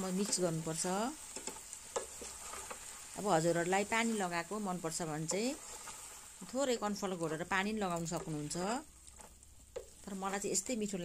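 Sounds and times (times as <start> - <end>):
food sizzling: 0.0 - 11.0
spatula stirring in frying pan: 0.0 - 11.0.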